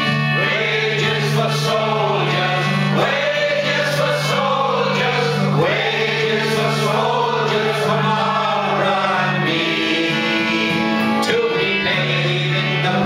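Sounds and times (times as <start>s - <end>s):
acoustic guitar: 0.0s - 13.0s
concertina chords: 0.0s - 13.0s
man singing: 0.0s - 13.0s.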